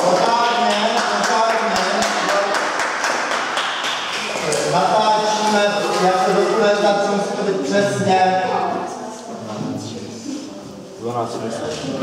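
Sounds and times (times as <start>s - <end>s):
murmur of children's voices: 4.1s - 12.0s.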